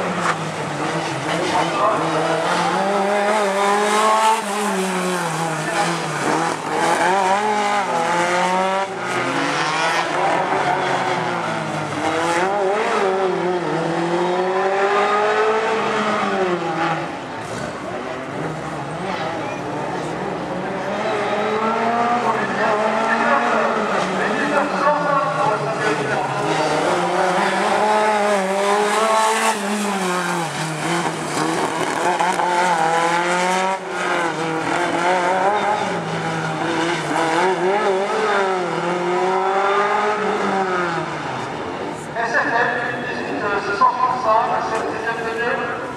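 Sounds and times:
car engine revving: 0:00.0 - 0:42.2.

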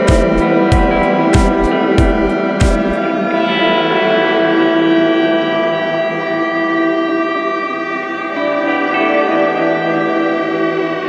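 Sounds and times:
sustained drone tones: 0:00.0 - 0:11.0.

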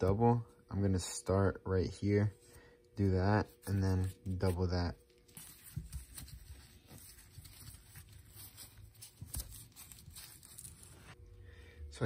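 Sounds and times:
rustling and scraping of wrap: 0:03.2 - 0:11.2.

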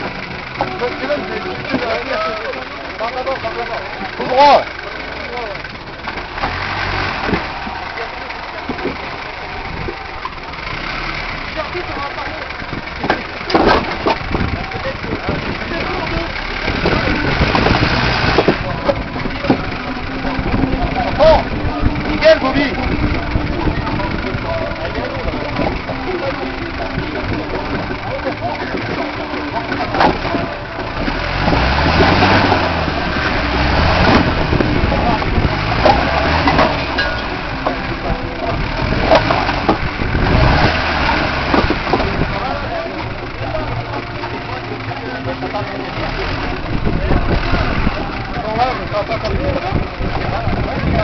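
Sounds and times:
vehicle engine revving under load: 0:00.0 - 0:51.0.

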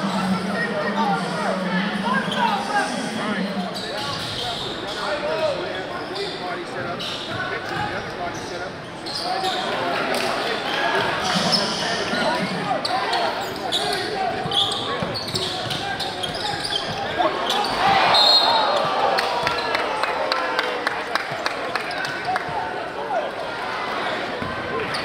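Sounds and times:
crowd voices in a gym: 0:00.0 - 0:25.0.

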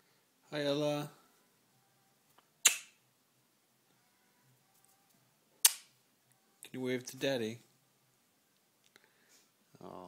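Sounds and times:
sharp pops: 0:02.6 - 0:03.0, 0:05.6 - 0:05.9.

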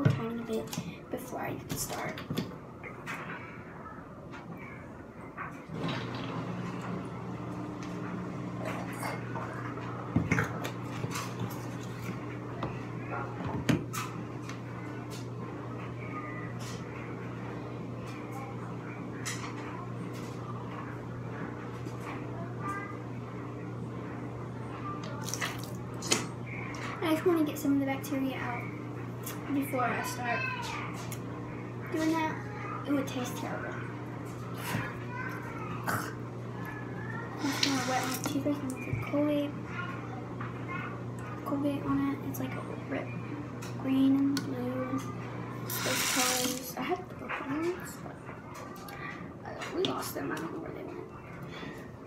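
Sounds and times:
low mechanical hum: 0:00.0 - 0:52.0.

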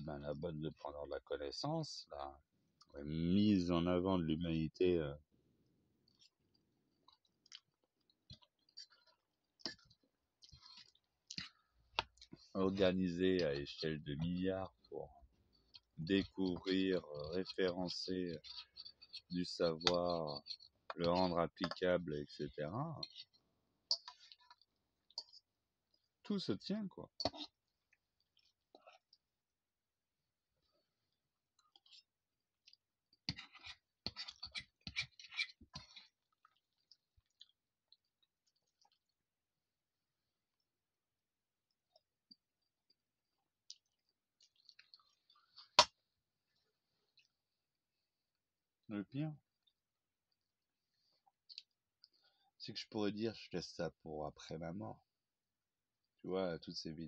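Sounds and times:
man speaking: 0:00.0 - 0:02.4, 0:03.0 - 0:05.2, 0:12.6 - 0:15.2, 0:16.0 - 0:18.5, 0:19.3 - 0:23.1, 0:26.3 - 0:27.1, 0:48.9 - 0:49.4, 0:52.6 - 0:55.0, 0:56.2 - 0:57.0.

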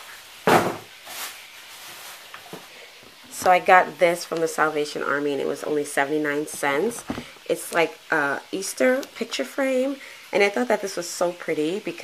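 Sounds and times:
soft rustle of items handled: 0:01.0 - 0:07.8
short thud: 0:07.0 - 0:07.3.

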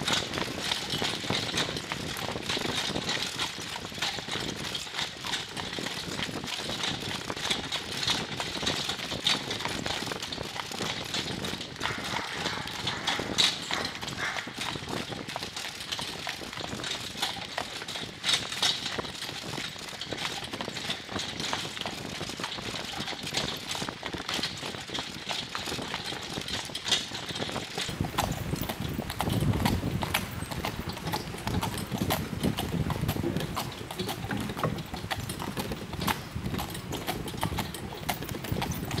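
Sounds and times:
hooves clip-clopping on gravel: 0:00.0 - 0:39.0.

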